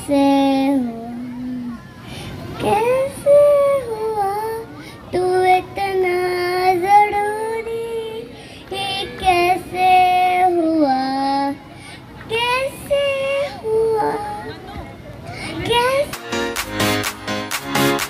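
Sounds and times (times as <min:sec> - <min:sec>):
boy singing through loudspeaker: 0:00.0 - 0:16.4.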